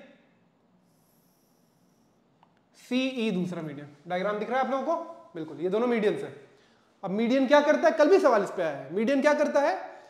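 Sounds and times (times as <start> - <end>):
stylus scratching on display: 0.8 - 2.4
man speaking: 2.8 - 6.4, 7.0 - 9.8.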